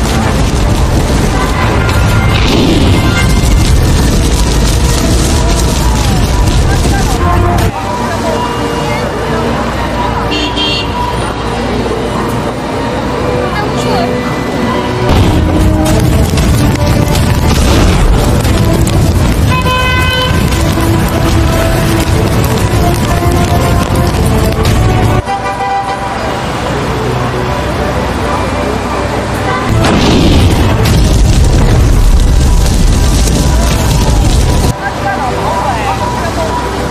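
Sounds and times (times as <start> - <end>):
battery fire boom: 0.0 - 7.7, 15.1 - 22.9, 29.7 - 34.7
low rumble of burning: 0.0 - 8.3, 15.0 - 25.2, 29.7 - 36.8
people's voices: 0.0 - 29.8, 32.9 - 36.9
street traffic: 0.0 - 36.9
car horn: 1.3 - 3.6, 10.1 - 11.4, 19.4 - 22.0, 22.6 - 26.6.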